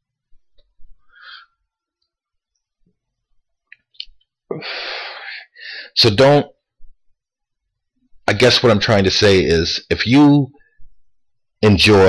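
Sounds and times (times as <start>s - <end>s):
man breathing in: 1.0s - 1.6s, 4.5s - 6.0s.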